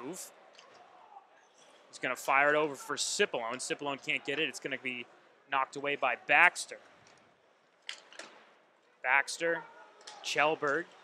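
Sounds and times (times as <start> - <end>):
faint booth background noise: 0.0 - 11.0.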